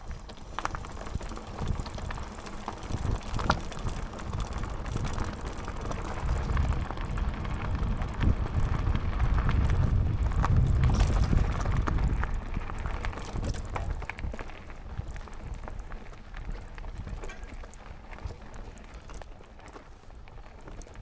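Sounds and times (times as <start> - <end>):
wind buffeting microphone: 0.0 - 19.3
bike rattles and clicks: 0.0 - 21.0
bike tyres rumbling over dirt: 0.0 - 21.0.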